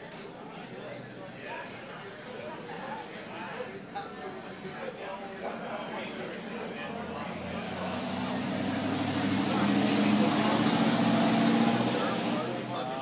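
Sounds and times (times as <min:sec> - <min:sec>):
diners chatting: 0:00.0 - 0:13.0
vehicle passing on street: 0:07.0 - 0:13.0.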